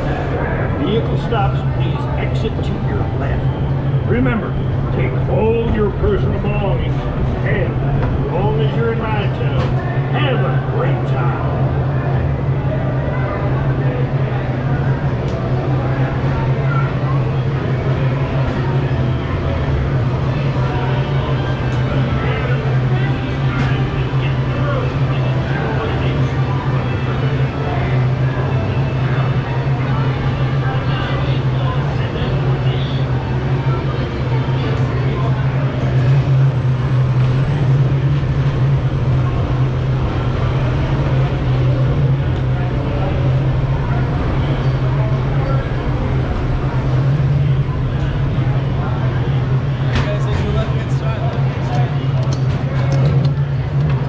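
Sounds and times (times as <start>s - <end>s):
crowd chatter: 0.0s - 54.0s
steady low hum: 0.0s - 54.0s.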